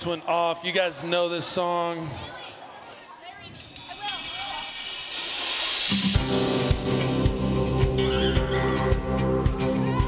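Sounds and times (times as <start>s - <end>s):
live band playing loudly: 3.6s - 10.0s.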